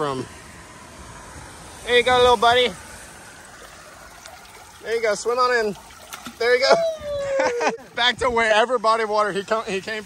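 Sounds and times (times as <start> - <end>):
water trickling in storm drain: 0.0 - 10.0.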